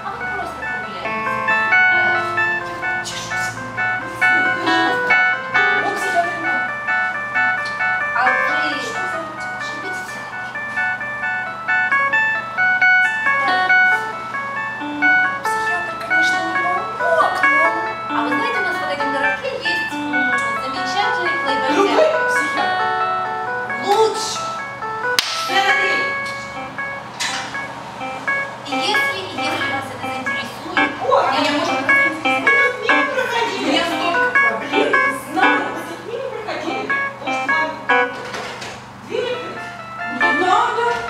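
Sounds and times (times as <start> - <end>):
electronic keyboard melody: 0.0 - 41.0
people's voices: 25.5 - 41.0.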